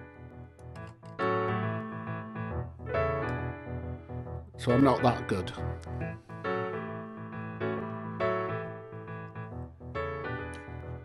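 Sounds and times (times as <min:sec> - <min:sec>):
piano blues chords: 0:00.0 - 0:11.0.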